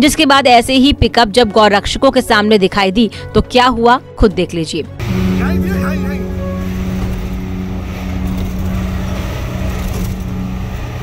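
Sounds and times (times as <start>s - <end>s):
road rumble: 5.0s - 11.0s
vehicle engine running: 5.0s - 11.0s.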